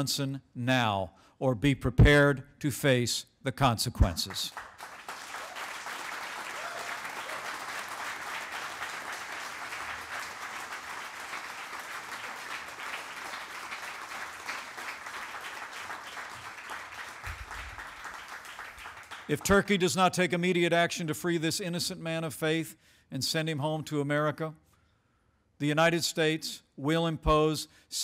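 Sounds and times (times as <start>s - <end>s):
audience applauding: 4.4s - 19.8s.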